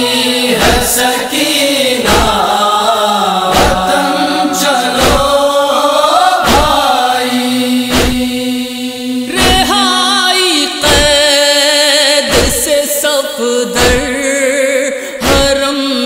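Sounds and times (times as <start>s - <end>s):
steady held drone: 0.0s - 10.1s
voices chanting a lament: 0.0s - 16.0s
chest-beating thumps: 0.6s - 1.1s, 2.0s - 2.5s, 3.5s - 4.0s, 4.9s - 5.5s, 6.4s - 6.9s, 7.9s - 8.4s, 9.4s - 9.8s, 10.8s - 11.2s, 12.3s - 12.7s, 13.8s - 14.1s.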